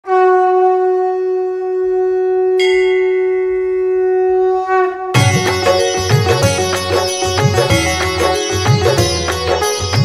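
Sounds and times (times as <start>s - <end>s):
conch shell blown: 0.0s - 10.0s.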